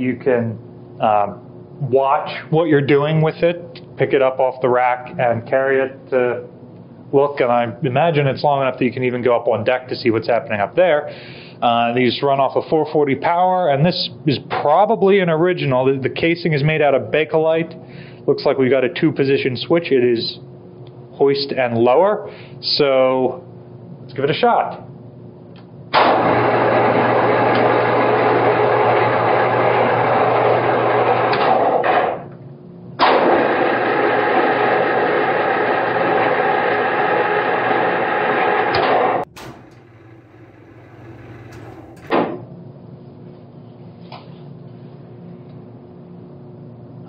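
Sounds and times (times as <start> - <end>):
electric winch motor whining: 34.3 - 42.2
winch clunk: 39.3 - 42.4.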